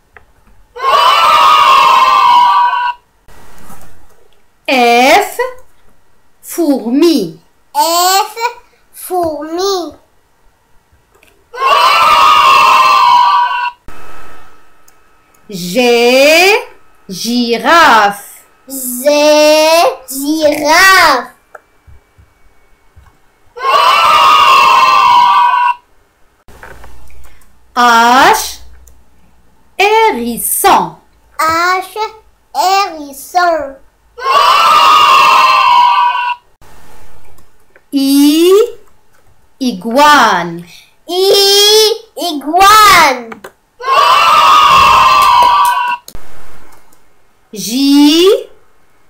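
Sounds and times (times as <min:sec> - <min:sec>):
children cheering and shouting: 0:00.8 - 0:03.0, 0:11.5 - 0:13.8, 0:23.5 - 0:25.8, 0:34.2 - 0:36.5, 0:43.8 - 0:46.2.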